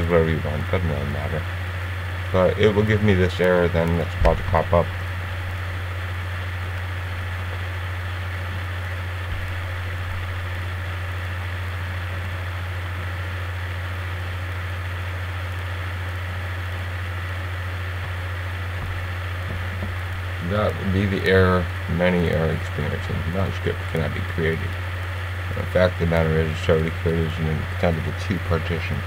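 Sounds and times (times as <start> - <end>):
faint hiss: 0.0 - 29.0
low hum: 0.0 - 29.0.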